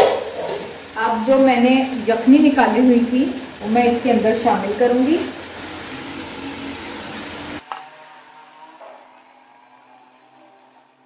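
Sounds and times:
stock pouring into sizzling pot: 0.0 - 11.0.

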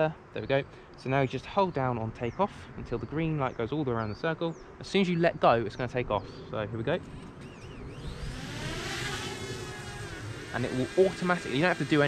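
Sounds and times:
drone propeller motors whine: 6.9 - 12.0.

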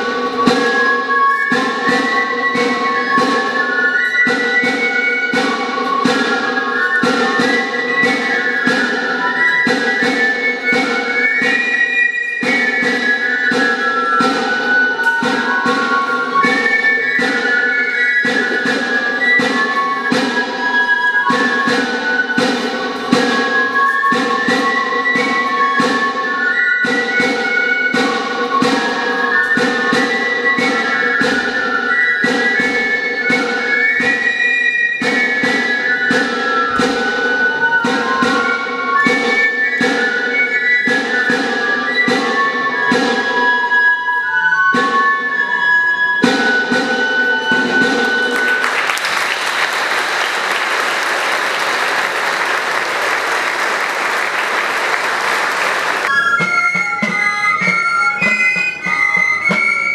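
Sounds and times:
audience applauding: 48.3 - 56.2.

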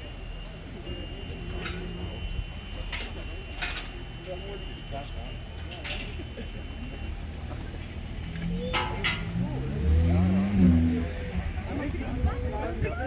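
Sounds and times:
crowd voices: 0.0 - 13.0
diesel bus engine revving: 9.2 - 11.8.

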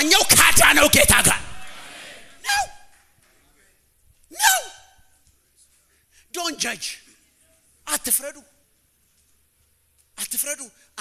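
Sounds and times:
man exclaiming into microphone: 0.0 - 1.6, 2.4 - 2.9, 4.3 - 5.0
faint room noise: 0.0 - 11.0.

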